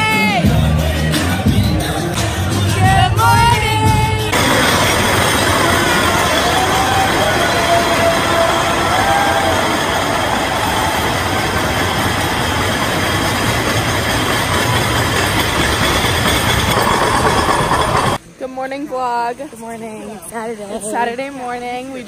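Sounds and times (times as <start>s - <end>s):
crowd yelling and cheering: 0.0s - 18.2s.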